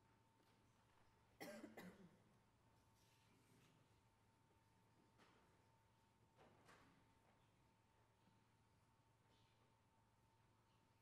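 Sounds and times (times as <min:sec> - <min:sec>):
person coughing: 0:01.4 - 0:02.2.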